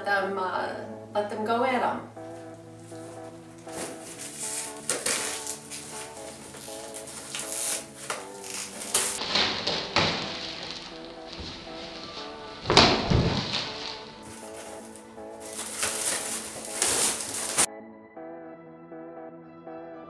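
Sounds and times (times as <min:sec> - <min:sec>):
background music: 0:00.0 - 0:20.0
plastic wrap rustling and crinkling: 0:02.3 - 0:17.7
loud thump: 0:12.6 - 0:13.7.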